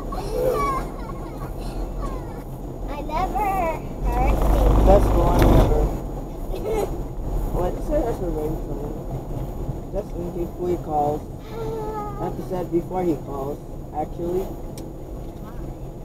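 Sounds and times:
road and engine rumble: 0.0s - 16.0s
voices talking in a car: 0.0s - 16.0s.

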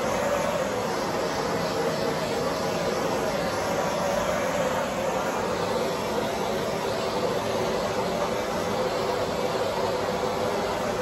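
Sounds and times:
torch flame rushing: 0.0s - 11.0s.

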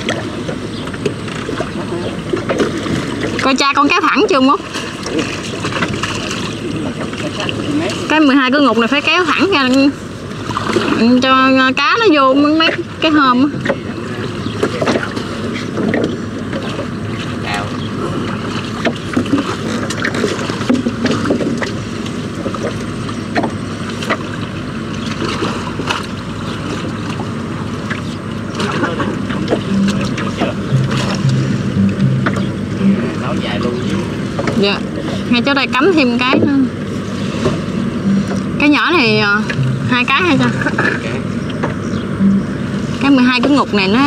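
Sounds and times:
low steady hum: 0.0s - 44.0s
water slapping boat hull: 0.0s - 44.0s.

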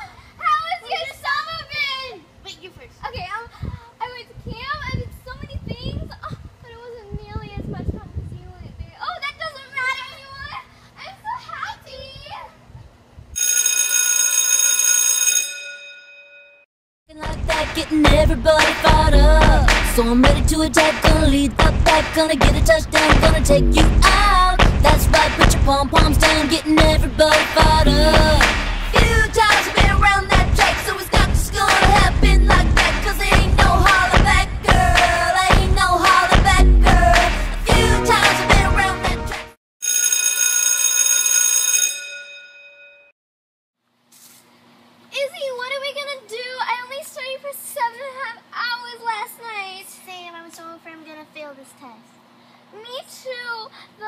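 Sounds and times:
bell-like ringing: 13.4s - 16.6s, 39.8s - 43.1s
chanted cheer song with music: 17.4s - 39.5s.

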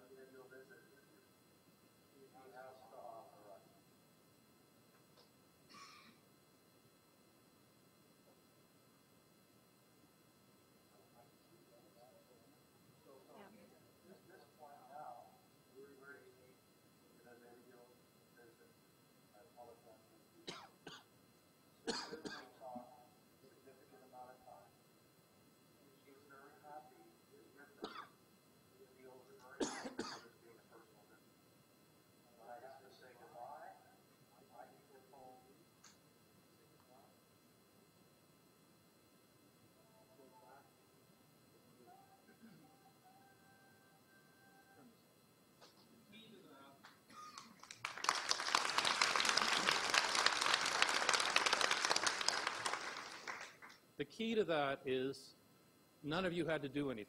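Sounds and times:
person coughing: 5.7s - 6.2s, 20.5s - 21.1s, 21.9s - 22.5s, 27.8s - 28.1s, 29.6s - 30.3s
faint speech: 41.6s - 43.0s
audience applauding: 47.4s - 53.8s.

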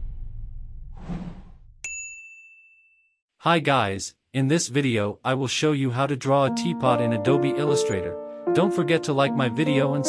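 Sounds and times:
bright ding: 1.8s - 3.2s.

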